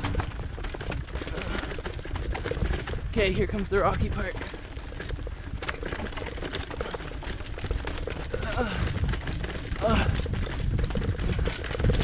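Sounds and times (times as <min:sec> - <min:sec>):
bike rattling over rocks: 0:00.0 - 0:12.0
wind rumble on microphone: 0:00.0 - 0:12.0.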